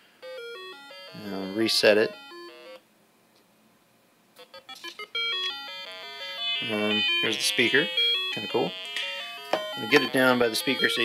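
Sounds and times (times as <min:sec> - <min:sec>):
buzzy square-wave beeps: 0:04.4 - 0:11.0.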